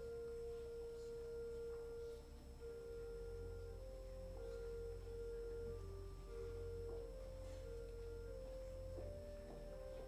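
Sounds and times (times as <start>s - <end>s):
church organ playing softly: 0.0s - 10.0s.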